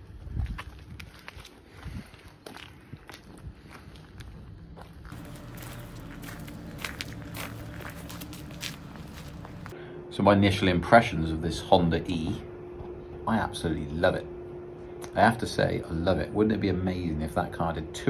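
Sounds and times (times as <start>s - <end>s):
footsteps on gravel: 0.0s - 9.8s
steady low hum: 0.0s - 18.0s.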